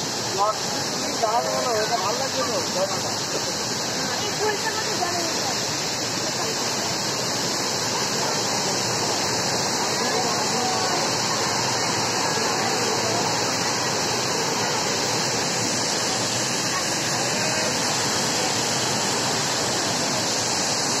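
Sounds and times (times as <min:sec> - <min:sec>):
waterfall roaring: 0:00.0 - 0:21.0
faint voices: 0:00.1 - 0:21.0.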